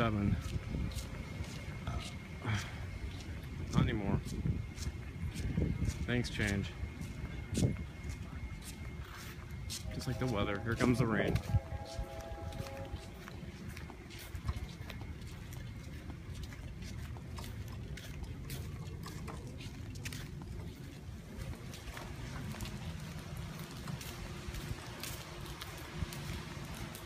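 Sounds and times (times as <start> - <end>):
wind on microphone: 0.0 - 27.0.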